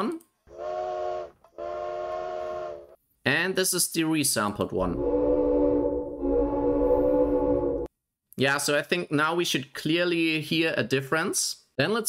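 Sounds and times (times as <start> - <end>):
steam train whistle blasts: 0.5 - 3.0, 5.0 - 7.9.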